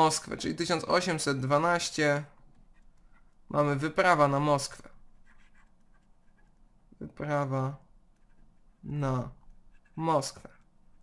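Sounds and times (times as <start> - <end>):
stylus scratching on tablet: 2.2 - 6.9, 8.1 - 11.0.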